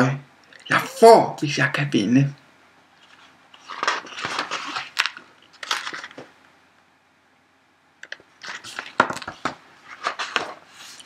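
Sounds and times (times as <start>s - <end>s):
paper pages rustling: 3.0s - 6.3s, 8.4s - 11.0s.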